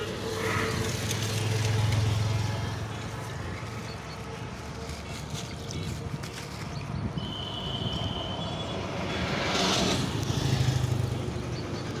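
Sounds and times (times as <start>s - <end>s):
road traffic rumble: 0.0s - 12.0s
vehicle passing: 8.7s - 12.0s.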